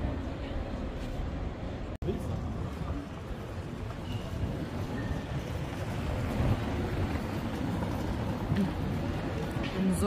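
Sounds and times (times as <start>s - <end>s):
wind buffeting microphone: 2.2s - 10.0s.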